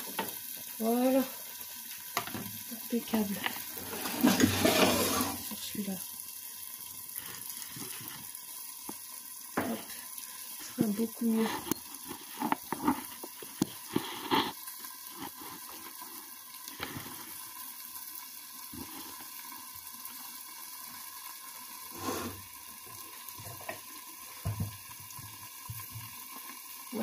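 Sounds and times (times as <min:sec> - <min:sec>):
food simmering and sizzling in pan: 0:00.0 - 0:27.0.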